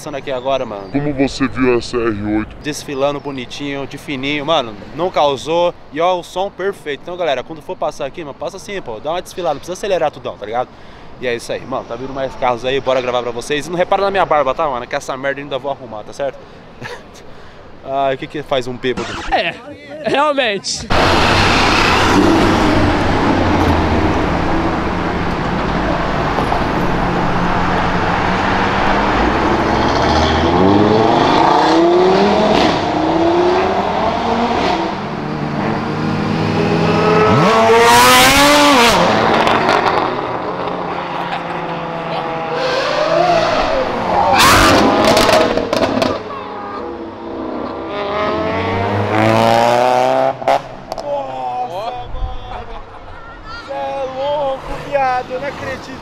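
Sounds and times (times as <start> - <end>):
cars and motorcycles accelerating past: 20.9 - 51.0.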